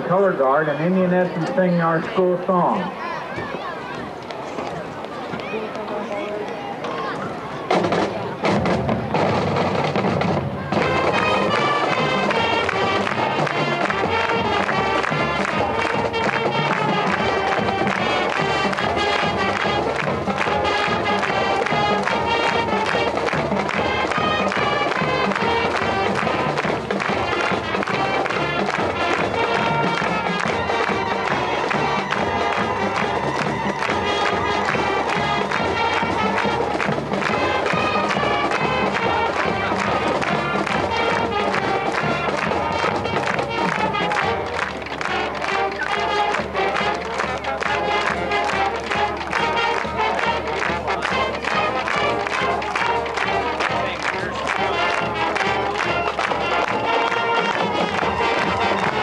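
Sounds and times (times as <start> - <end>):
marching band playing: 0.0 - 59.0
drumline beat: 7.7 - 59.0.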